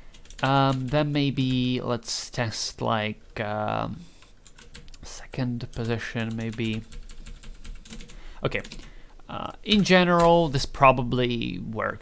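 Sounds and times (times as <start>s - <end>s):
keyboard typing: 0.1s - 1.7s, 4.2s - 5.0s, 5.7s - 8.9s.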